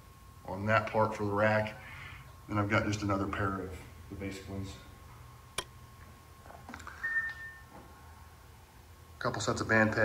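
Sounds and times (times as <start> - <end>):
faint steady whine: 0.0 - 10.0
faint high beep: 6.9 - 7.7.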